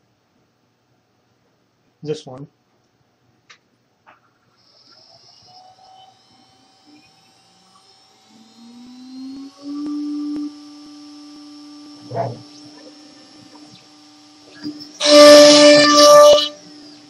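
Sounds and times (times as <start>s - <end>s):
spindle spinning up with high whine: 4.1s - 17.0s
low motor whine: 4.2s - 17.0s.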